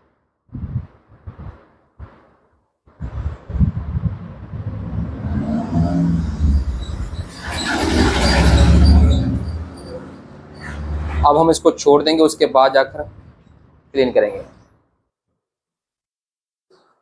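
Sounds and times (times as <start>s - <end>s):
motor vehicle passing by: 4.5s - 12.0s.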